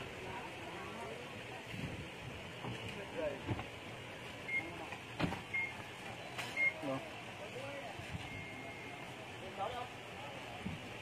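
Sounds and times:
high-pitched electronic beeps: 8.2 - 9.0.

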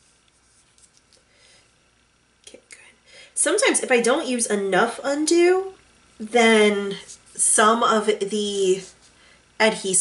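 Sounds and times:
paper rustling: 0.0 - 1.2.

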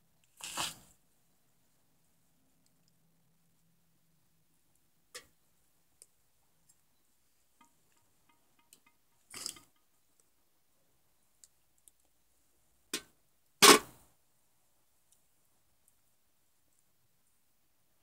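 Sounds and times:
charcoal fire crackling and popping: 0.2 - 0.9.

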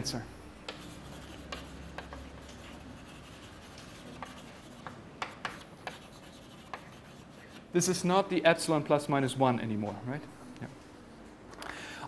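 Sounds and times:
chalk tapping on blackboard: 0.6 - 7.7
chalk scratching on blackboard: 0.7 - 7.7.

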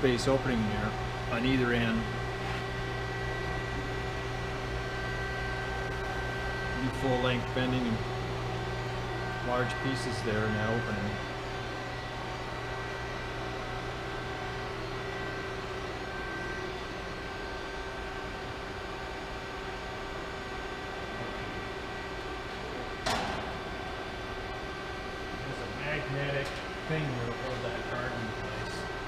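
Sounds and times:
hydraulic pump humming: 0.0 - 29.0.

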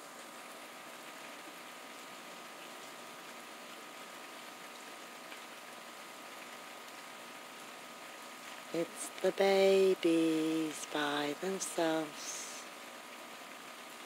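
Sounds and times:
rain falling: 0.0 - 14.0.

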